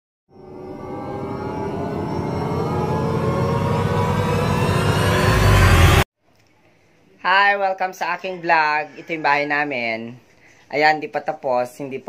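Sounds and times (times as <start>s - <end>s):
dense many-toned rising swell: 0.3s - 6.1s.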